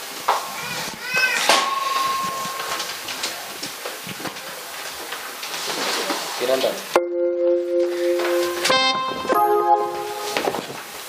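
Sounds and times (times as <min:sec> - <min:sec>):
light room noise: 0:00.0 - 0:07.0, 0:07.7 - 0:11.0
high-pitched wavering cry: 0:00.5 - 0:02.8
steady high tone: 0:01.5 - 0:03.0, 0:07.0 - 0:10.6.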